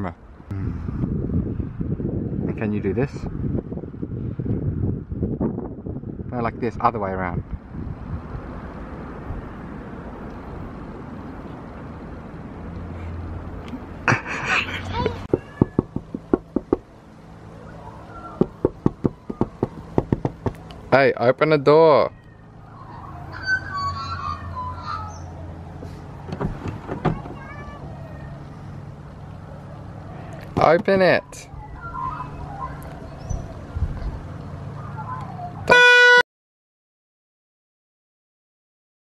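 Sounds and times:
sharp knocks: 15.3s - 16.9s, 18.4s - 20.6s.

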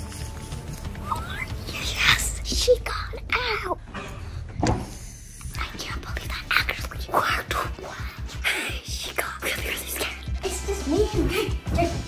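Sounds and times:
background music: 0.0s - 12.0s
person whispering: 5.1s - 10.3s.

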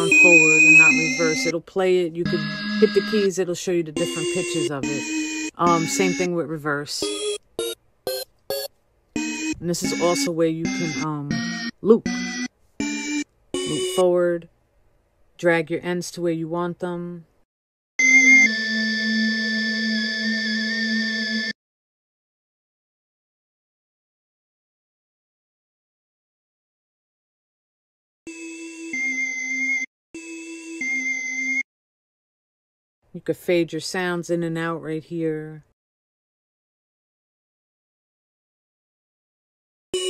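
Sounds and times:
held pitched tone: 0.0s - 1.5s, 2.2s - 3.3s, 4.0s - 6.4s, 7.0s - 14.0s
sampled music loop: 0.0s - 1.5s, 2.2s - 3.2s, 4.0s - 6.3s, 7.0s - 14.0s.

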